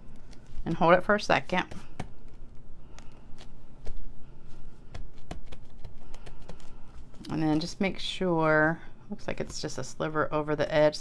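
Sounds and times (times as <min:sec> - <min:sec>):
paper rustling: 0:01.7 - 0:07.7.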